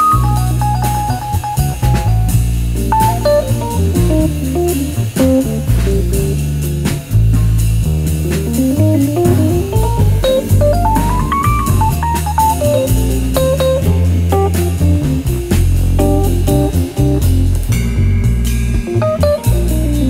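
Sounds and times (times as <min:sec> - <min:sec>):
electric piano runs: 0:00.0 - 0:05.9, 0:08.8 - 0:17.6, 0:18.2 - 0:20.0
drum kit with cymbals: 0:00.0 - 0:20.0
upright double bass: 0:00.0 - 0:20.0.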